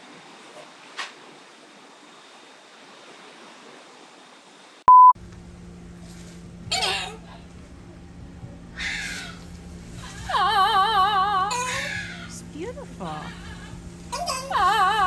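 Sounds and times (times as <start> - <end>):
low steady hum: 4.8 - 15.0
electronic beep: 4.9 - 5.2
parrot squawks: 11.6 - 12.4.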